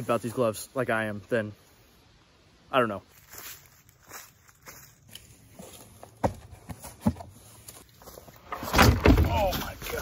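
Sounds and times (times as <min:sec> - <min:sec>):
footsteps on ground: 0:02.9 - 0:08.6, 0:09.2 - 0:10.0.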